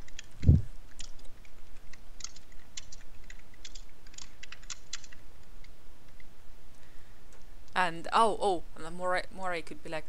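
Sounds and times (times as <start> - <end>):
keyboard keystroke clicks: 0.0 - 5.7.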